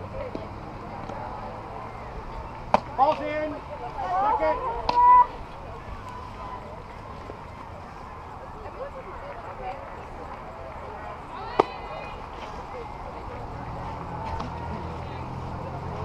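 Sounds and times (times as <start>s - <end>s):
softball bat crack: 2.7s - 3.3s, 4.8s - 5.1s, 11.4s - 11.8s, 14.2s - 14.9s
young players shouting: 3.2s - 6.8s.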